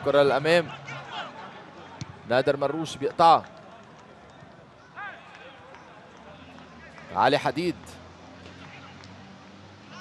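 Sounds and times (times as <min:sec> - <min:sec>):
faint open-air ambience: 0:00.0 - 0:10.0.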